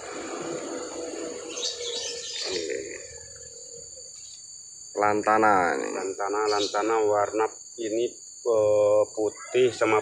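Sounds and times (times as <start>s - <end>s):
insects chirring: 0.0s - 10.0s.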